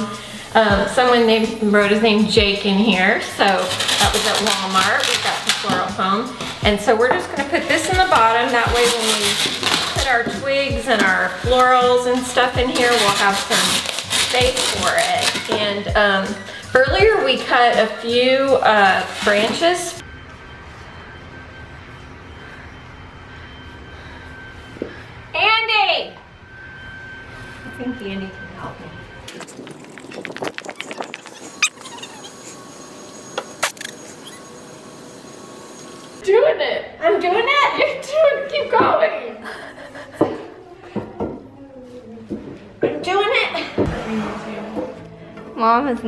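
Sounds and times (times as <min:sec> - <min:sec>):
women's voices: 0:00.0 - 0:20.0, 0:36.2 - 0:45.0
loppers clicking and creaking: 0:29.3 - 0:34.5
women laughing: 0:39.4 - 0:40.7.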